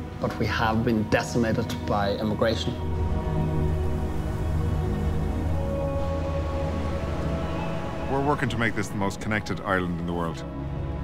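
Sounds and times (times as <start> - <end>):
background music held chord: 0.0 - 11.0.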